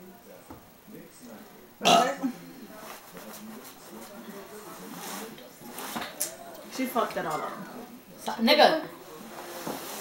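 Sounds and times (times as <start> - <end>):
murmuring voices: 0.0 - 10.0
woman clearing her throat: 1.8 - 2.3.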